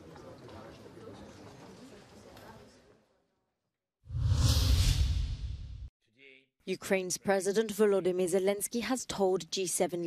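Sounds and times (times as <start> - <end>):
whoosh transition effect: 4.1 - 5.9.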